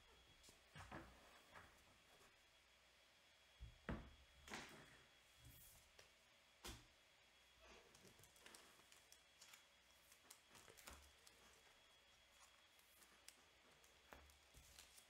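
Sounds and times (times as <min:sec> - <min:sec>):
soft handling noises: 0:07.6 - 0:15.0.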